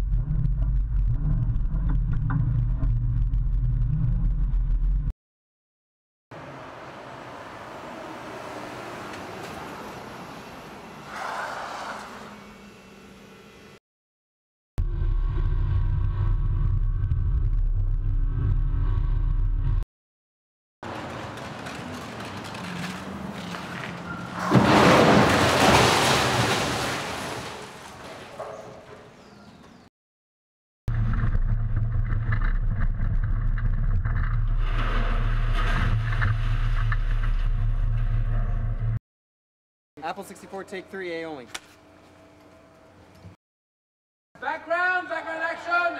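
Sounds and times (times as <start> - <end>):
car passing close: 6.4 - 12.7
city street traffic rumble: 6.4 - 13.8, 20.8 - 24.5
car engine and road rumble: 20.8 - 24.5.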